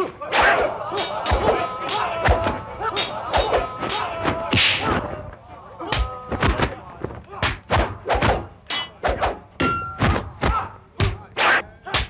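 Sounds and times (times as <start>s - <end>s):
sharp fight whacks: 4.5s - 5.0s, 7.4s - 9.4s.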